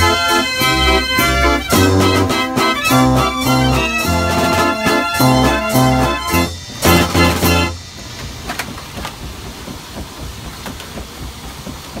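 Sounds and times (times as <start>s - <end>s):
steady mechanical drive noise: 0.0s - 12.0s.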